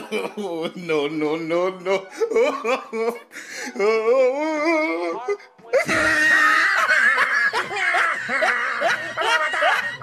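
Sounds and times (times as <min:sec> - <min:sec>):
person laughing: 0:01.9 - 0:10.0.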